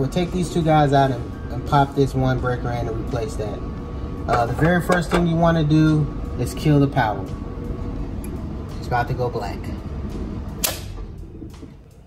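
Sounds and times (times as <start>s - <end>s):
low electrical hum: 0.0s - 12.0s
breaker switch snapping off: 10.6s - 11.0s.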